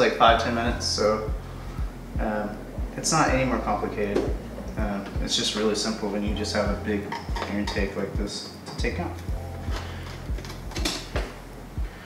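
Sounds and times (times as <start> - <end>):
steady low hum: 0.0 - 12.0
low thumps: 0.3 - 12.0.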